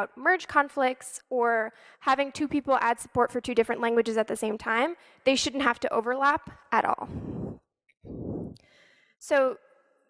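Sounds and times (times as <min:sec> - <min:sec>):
woman breathing into microphone: 0:07.1 - 0:09.2.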